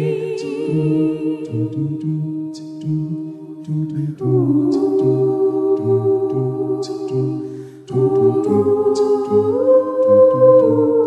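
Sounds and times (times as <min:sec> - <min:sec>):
a cappella ensemble singing chords: 0:00.0 - 0:11.0
bass voice pulsing rhythm: 0:00.0 - 0:11.0.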